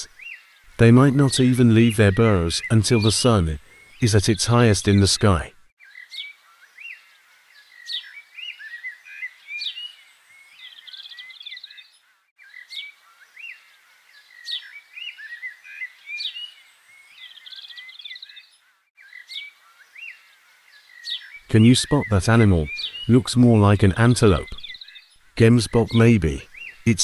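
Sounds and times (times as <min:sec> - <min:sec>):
high bird trill: 0:00.0 - 0:07.0, 0:07.6 - 0:27.0
bird chirping and calling: 0:00.0 - 0:27.0.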